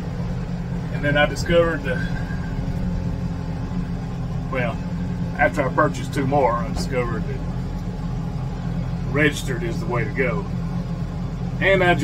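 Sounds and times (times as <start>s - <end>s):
tractor engine rumble: 0.0s - 12.0s.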